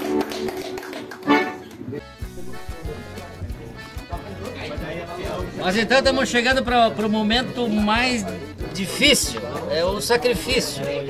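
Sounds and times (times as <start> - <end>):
piano accordion: 1.2 - 4.4.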